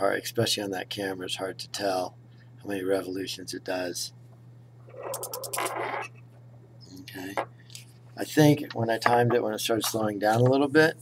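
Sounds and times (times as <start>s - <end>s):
spinning top rattling on table: 5.0s - 6.1s.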